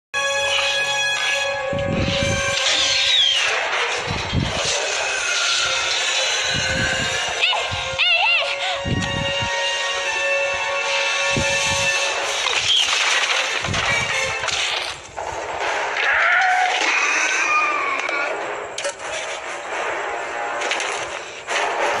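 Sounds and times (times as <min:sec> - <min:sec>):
orchestral music with held notes: 0:00.2 - 0:12.7
dinosaur screeches: 0:02.0 - 0:03.6, 0:04.6 - 0:07.6, 0:16.0 - 0:18.4.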